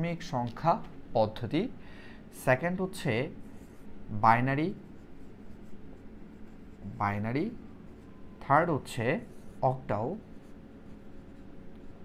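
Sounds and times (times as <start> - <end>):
marker rubbing on whiteboard: 2.6 - 12.0.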